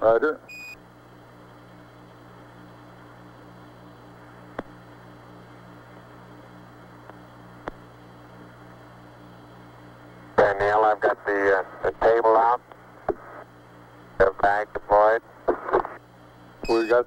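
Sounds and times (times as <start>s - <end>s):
pulsing electrical hum: 0.0s - 17.0s
radio static hiss: 10.3s - 17.0s.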